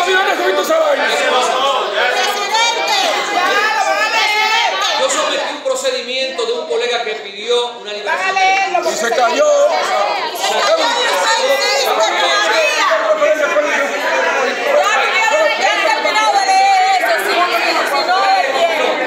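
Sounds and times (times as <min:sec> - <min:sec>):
many voices arguing: 0:00.0 - 0:19.0.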